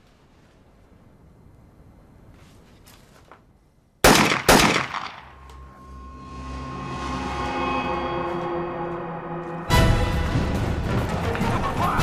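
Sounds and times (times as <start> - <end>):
gunshots: 4.0 - 5.3
low dramatic music: 4.9 - 12.0.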